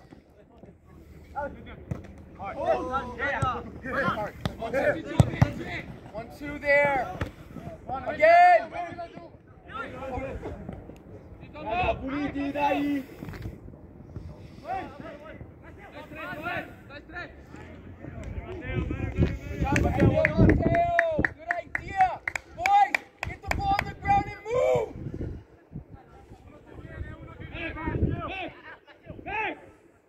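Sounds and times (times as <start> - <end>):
players shouting: 2.4 - 10.5.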